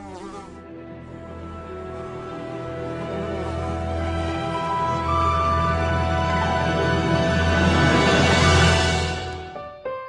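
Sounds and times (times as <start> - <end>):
fly buzzing: 0.0 - 5.6
soft background music: 0.0 - 10.0.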